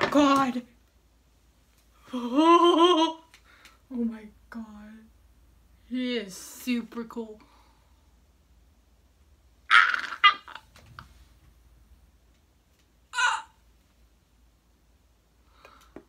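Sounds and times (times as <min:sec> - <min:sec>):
girl squealing: 0:09.7 - 0:10.6, 0:13.2 - 0:13.6.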